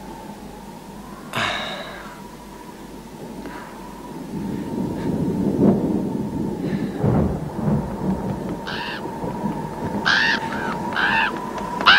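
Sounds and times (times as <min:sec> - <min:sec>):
faint steady tone: 0:00.0 - 0:05.3.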